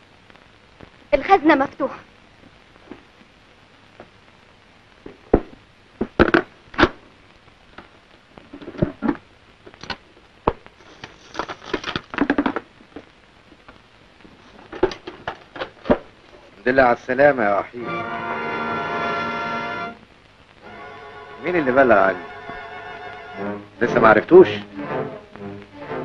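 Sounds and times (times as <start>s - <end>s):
rustling: 5.0s - 16.7s.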